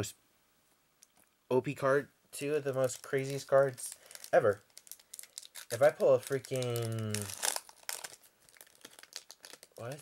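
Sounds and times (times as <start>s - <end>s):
person speaking: 1.5s - 4.7s, 5.6s - 7.6s, 9.6s - 10.0s
card pack crinkling and rustling: 2.6s - 10.0s.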